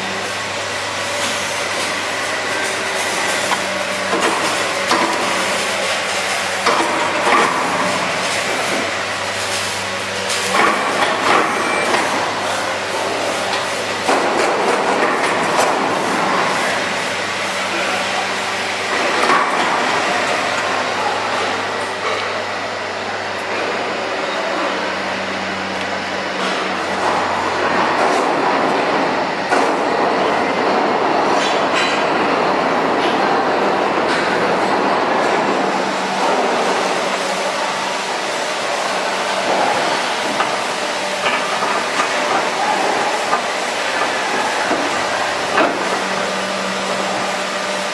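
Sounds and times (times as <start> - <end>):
machinery hum and rumble: 0.0 - 47.9.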